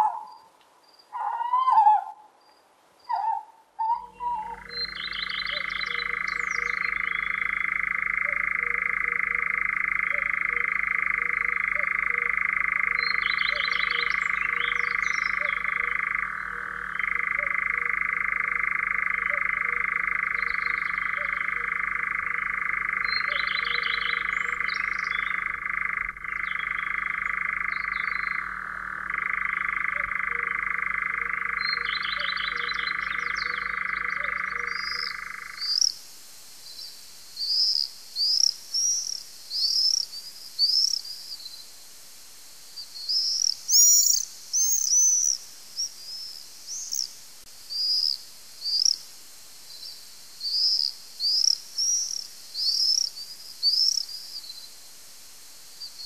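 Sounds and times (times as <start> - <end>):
bird chattering calls: 3.1 - 35.9
nightjar churring trill: 3.1 - 36.0, 43.1 - 47.1.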